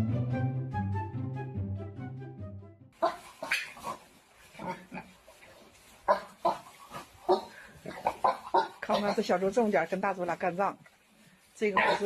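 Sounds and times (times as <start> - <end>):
pigs squealing and grunting: 3.0 - 5.2, 6.1 - 9.2, 11.8 - 12.0.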